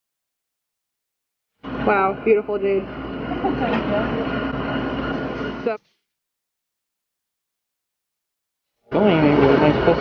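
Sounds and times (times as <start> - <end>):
kitchen hum and rumble: 1.6 - 5.8, 8.9 - 10.0.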